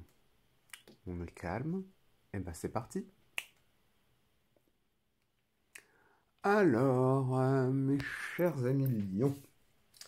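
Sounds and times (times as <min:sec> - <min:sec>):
finger snap: 0:00.7 - 0:01.0, 0:03.3 - 0:03.7, 0:05.7 - 0:05.9.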